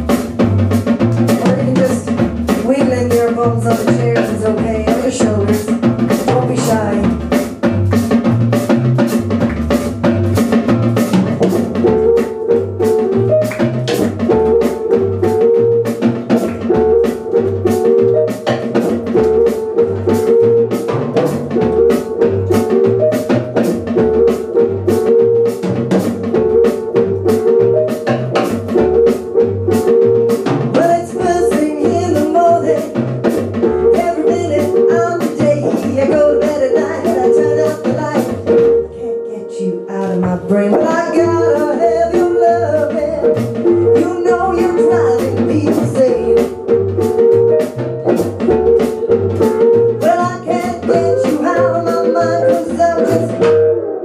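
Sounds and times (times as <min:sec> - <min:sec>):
rhythm and blues band playing: 0:00.0 - 0:54.0
walking double bass line: 0:00.0 - 0:54.0.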